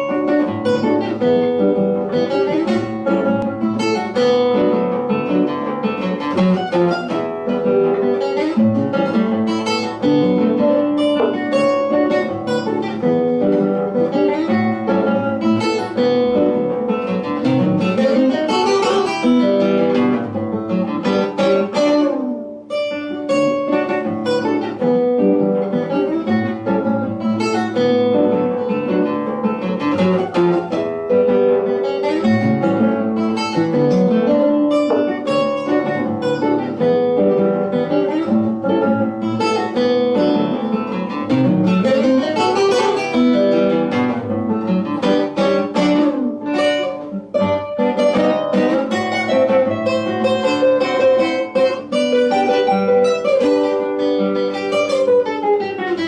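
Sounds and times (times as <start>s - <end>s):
classical guitars playing duet: 0.0s - 56.0s.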